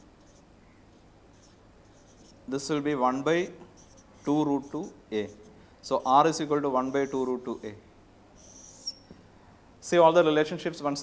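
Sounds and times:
marker squeaking on whiteboard: 0.0 - 0.5, 1.3 - 2.5, 3.4 - 7.8, 8.4 - 9.1.

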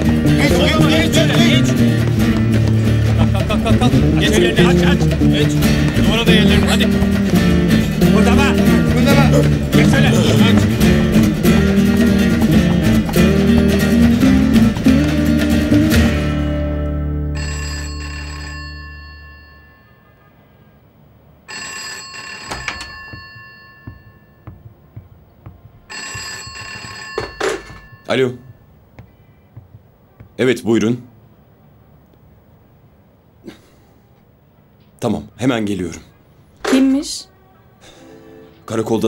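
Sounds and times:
guitar music: 0.0 - 17.4
telephone bell ringing: 17.2 - 20.3, 21.4 - 24.6, 25.9 - 28.6.

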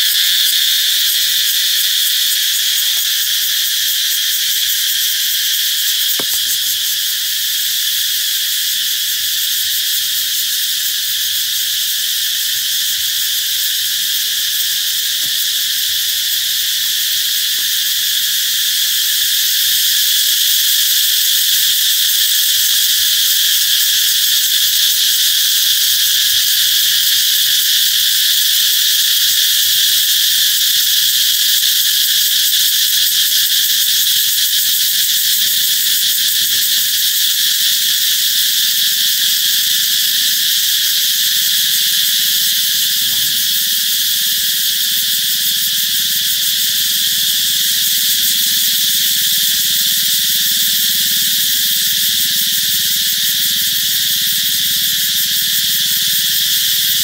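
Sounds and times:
cicadas buzzing: 0.0 - 57.0.

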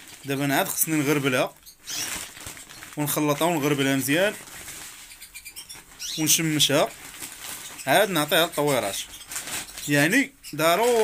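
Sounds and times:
man speaking: 6.2 - 6.9, 9.9 - 11.0.

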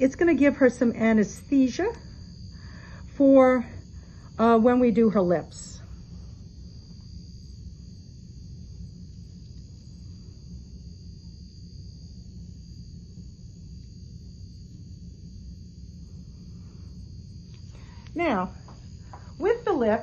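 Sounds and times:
high-pitched whine: 0.0 - 20.0
low hum: 0.0 - 20.0.

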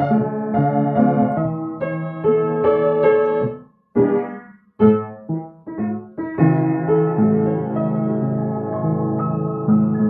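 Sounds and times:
piano chords ringing: 0.0 - 10.0.

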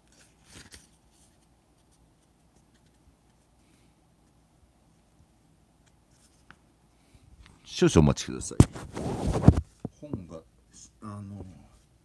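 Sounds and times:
book pages rustling: 0.0 - 4.4, 5.8 - 6.6, 8.5 - 9.9.

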